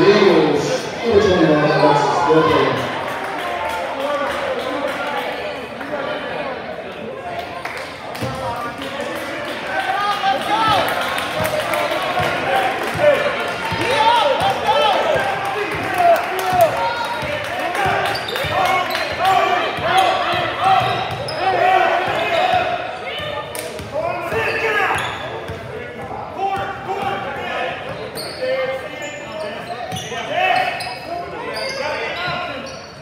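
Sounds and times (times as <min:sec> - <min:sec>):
sneakers squeaking: 0:17.8 - 0:26.0, 0:27.8 - 0:33.0.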